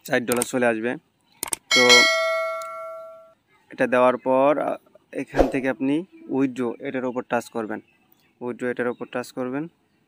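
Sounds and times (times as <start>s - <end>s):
bell ding: 1.7s - 3.3s.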